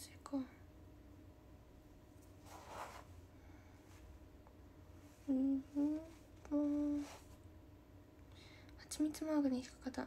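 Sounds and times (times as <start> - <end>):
woman humming: 5.2 - 7.2.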